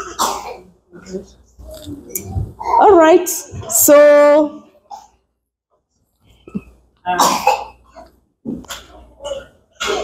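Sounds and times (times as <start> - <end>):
person coughing: 7.2 - 7.8.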